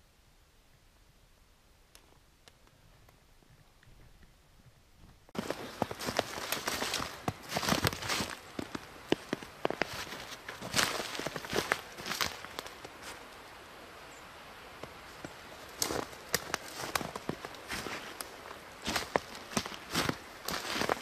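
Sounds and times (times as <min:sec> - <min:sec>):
footsteps crunching through snow: 0:05.4 - 0:13.2, 0:14.8 - 0:21.0.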